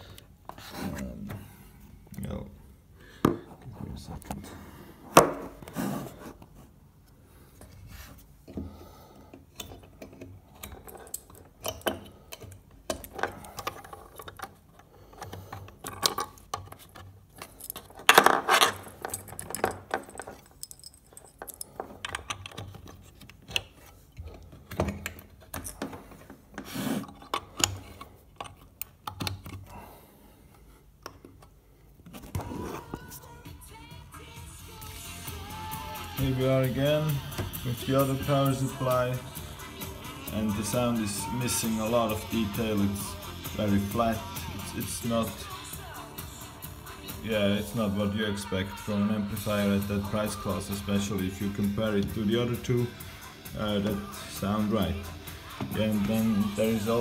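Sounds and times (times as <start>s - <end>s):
cables and plugs rattling: 9.5s - 29.7s
faint music through speakers: 32.4s - 57.0s.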